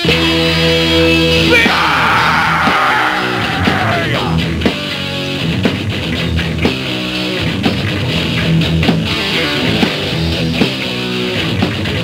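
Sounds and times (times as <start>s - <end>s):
distorted electric guitar chords: 0.0s - 12.0s
drums at steady beat: 3.6s - 12.0s.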